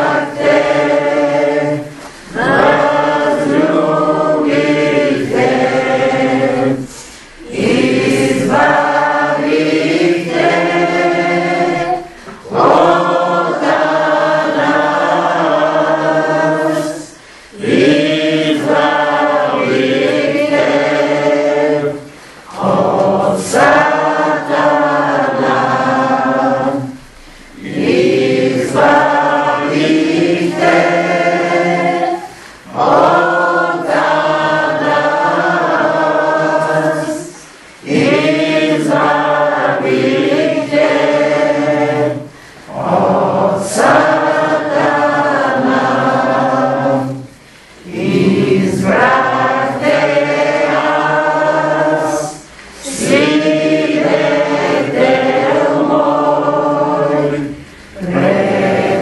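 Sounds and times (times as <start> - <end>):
group singing a hymn: 0.0 - 59.0.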